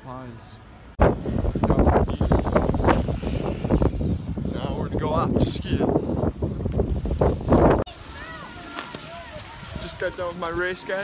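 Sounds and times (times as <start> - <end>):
wind buffeting microphone: 1.0 - 8.1.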